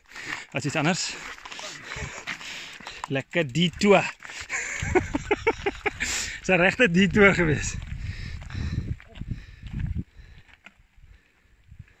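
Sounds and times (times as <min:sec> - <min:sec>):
mountain bike clicks: 0:00.1 - 0:06.4.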